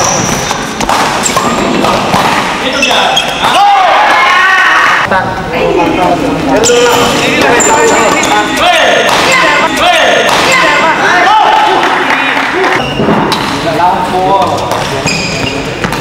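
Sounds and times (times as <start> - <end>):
rackets hitting shuttlecock: 0.0 - 3.6, 8.6 - 10.7, 14.6 - 15.1
shoes squeaking on court: 0.0 - 3.6, 14.6 - 16.0.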